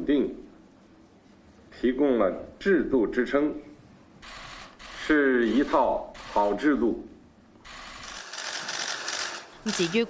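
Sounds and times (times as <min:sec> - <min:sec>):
camera shutters clicking: 0:07.7 - 0:09.9.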